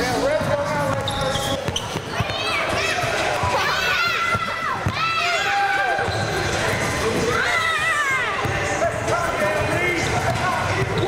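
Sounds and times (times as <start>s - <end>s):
basketballs bouncing on hardwood floor: 0.8s - 3.6s.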